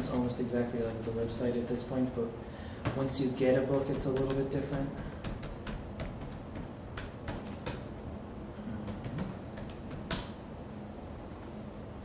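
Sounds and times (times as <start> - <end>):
keyboard typing: 3.7 - 8.0, 8.8 - 10.4.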